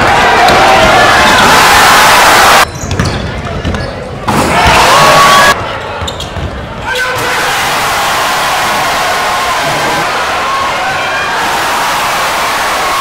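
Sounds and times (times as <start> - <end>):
crowd noise and voices: 0.0 - 13.0.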